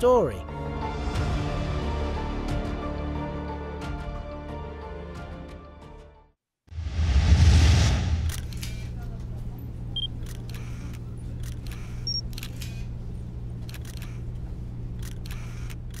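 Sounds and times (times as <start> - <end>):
steady low hum: 8.2 - 16.0
camera shutter clicks: 8.3 - 8.8, 10.2 - 12.9, 13.6 - 14.3, 15.0 - 16.0
short electronic beeps: 12.0 - 12.2.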